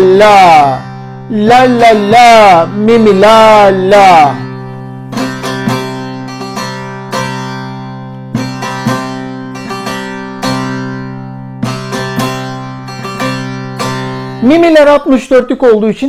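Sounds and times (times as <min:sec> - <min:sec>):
lute strummed with a plectrum: 0:00.0 - 0:15.3.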